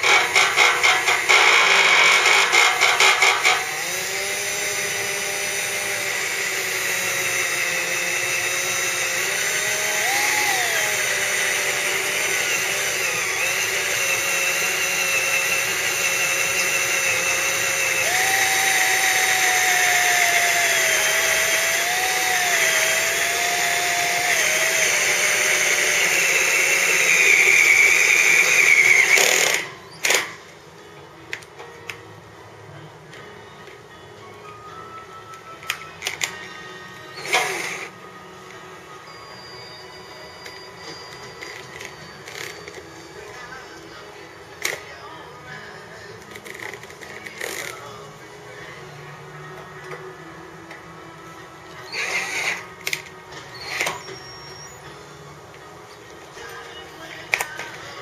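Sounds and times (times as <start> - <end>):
cordless drill boring through metal: 0.0 - 30.4, 37.0 - 38.0, 51.8 - 54.8.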